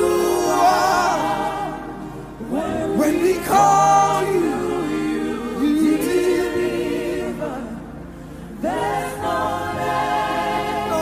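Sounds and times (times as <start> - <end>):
low musical backing: 0.0 - 11.0
voices singing gospel: 0.0 - 11.0.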